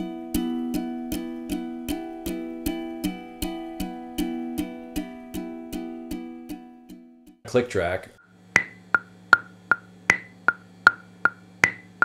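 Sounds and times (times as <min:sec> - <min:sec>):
metronome click: 0:08.6 - 0:11.9.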